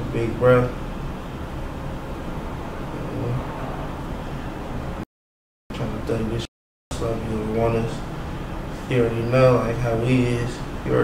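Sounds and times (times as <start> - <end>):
faint voice hum: 3.0 - 3.4.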